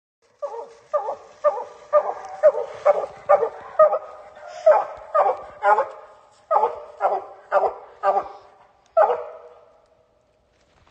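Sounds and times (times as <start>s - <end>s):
hound barking: 0.4s - 9.8s.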